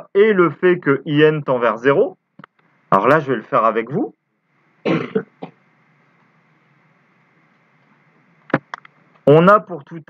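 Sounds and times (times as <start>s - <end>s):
man clearing throat: 4.9s - 5.6s.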